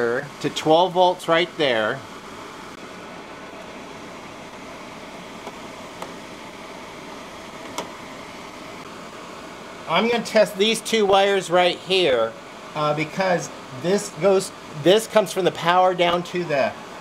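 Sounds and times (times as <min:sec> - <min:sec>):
steady mechanical whirring: 0:00.0 - 0:17.0.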